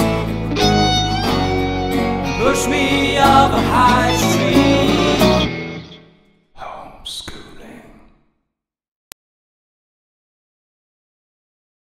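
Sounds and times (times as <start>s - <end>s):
unclear human vocal sound: 2.2s - 5.5s.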